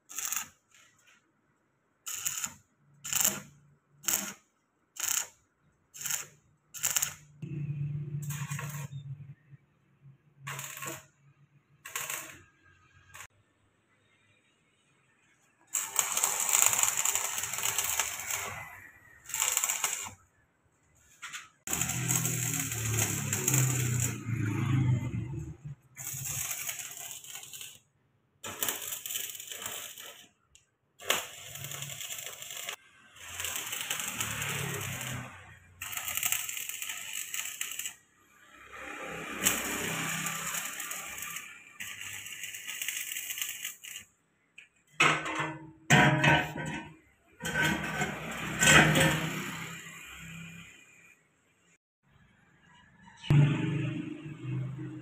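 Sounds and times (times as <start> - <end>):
welding arc crackling and sizzling: 0.0 - 1.1, 2.0 - 9.5, 10.4 - 13.4, 15.6 - 20.3, 21.0 - 44.2, 47.4 - 51.2.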